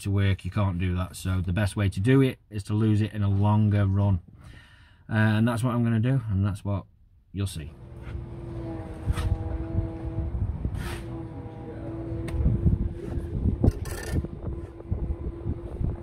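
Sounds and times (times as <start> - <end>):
low rumble: 7.7 - 16.0
machine engine hum: 7.7 - 16.0.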